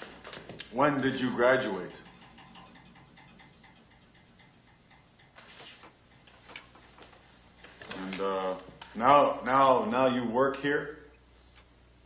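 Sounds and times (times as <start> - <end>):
quick even ticking: 1.1 - 6.8
soft brushing or knocking: 5.3 - 7.2.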